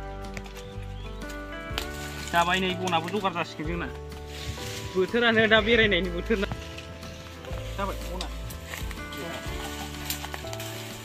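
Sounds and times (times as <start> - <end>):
background music with low notes: 0.0 - 11.0
dry twigs snapping: 0.1 - 5.4, 6.2 - 11.0.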